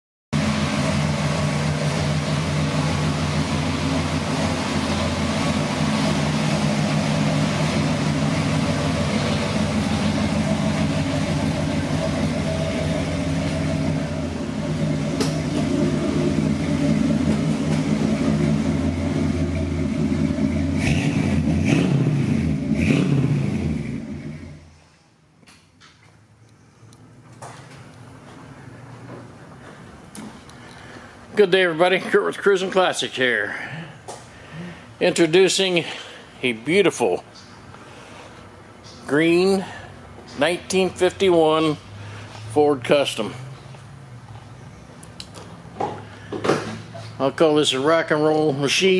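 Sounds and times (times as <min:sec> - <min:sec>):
car engine idling and revving: 0:00.4 - 0:24.8, 0:39.6 - 0:48.2.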